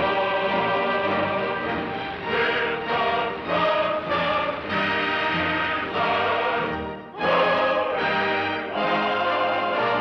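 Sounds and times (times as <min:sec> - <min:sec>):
orchestral film score with choir: 0:00.0 - 0:10.0.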